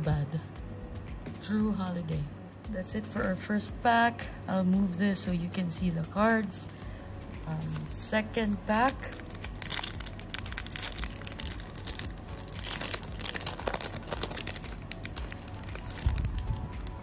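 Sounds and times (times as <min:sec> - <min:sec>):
foil wrapper tearing and crinkling: 0:07.6 - 0:17.0.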